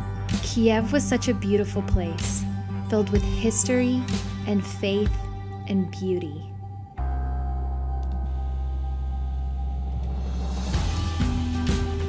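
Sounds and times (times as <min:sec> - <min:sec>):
sustained low chord: 0:00.0 - 0:12.0.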